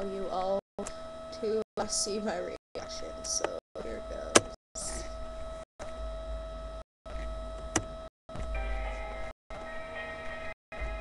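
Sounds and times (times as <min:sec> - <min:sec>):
electrical hum and whine: 0:00.0 - 0:11.0.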